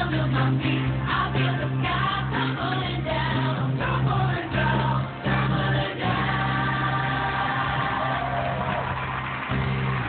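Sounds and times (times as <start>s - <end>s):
band and choir singing pop song: 0.0s - 8.8s.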